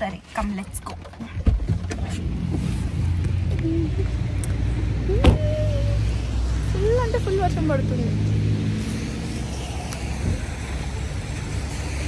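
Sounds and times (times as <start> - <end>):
motor vehicles rumbling: 0.0 - 12.0
person humming: 3.5 - 4.3, 5.0 - 6.1.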